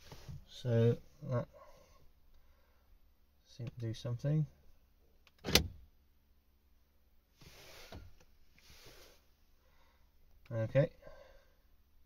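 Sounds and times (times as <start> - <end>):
door lock actuator clunk: 5.4 - 5.7.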